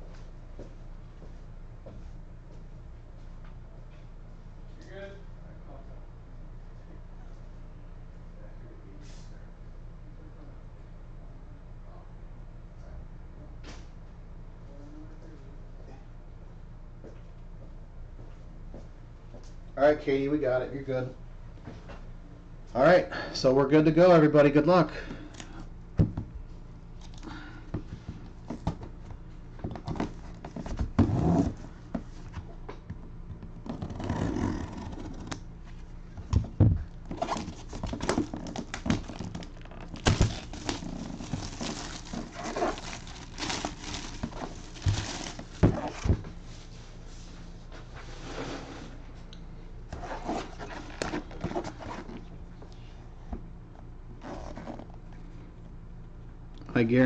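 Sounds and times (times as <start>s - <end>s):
hands handling a cardboard box: 36.2s - 46.4s
plastic wrap rustling: 37.1s - 46.2s.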